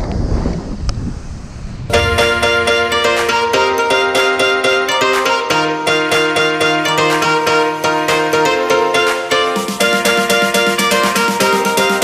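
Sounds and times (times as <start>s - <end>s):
wind noise on microphone: 0.0s - 4.1s
music: 1.9s - 12.0s.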